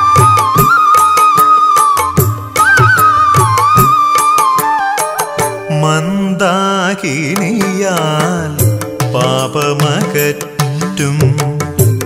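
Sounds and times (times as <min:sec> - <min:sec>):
percussion strokes: 0:00.0 - 0:12.0.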